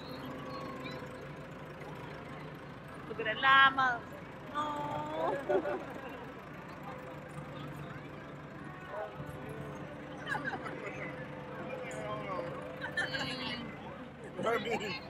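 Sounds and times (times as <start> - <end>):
low engine-like hum: 0.0 - 15.0
other voices: 1.9 - 15.0.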